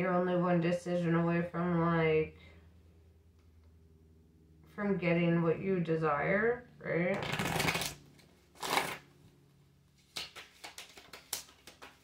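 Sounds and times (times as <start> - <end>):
cards swishing: 8.6 - 9.0, 10.0 - 12.0.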